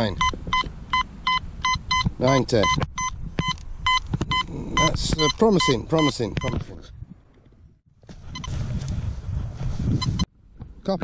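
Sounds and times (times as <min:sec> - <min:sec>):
metal detector tones: 0:00.0 - 0:06.6
rough rustling noise: 0:06.6 - 0:10.3.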